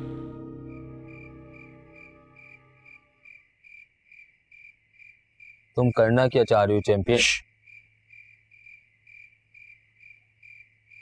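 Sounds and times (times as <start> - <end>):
soft background music: 0.0 - 3.1
cricket chirping: 0.0 - 11.0.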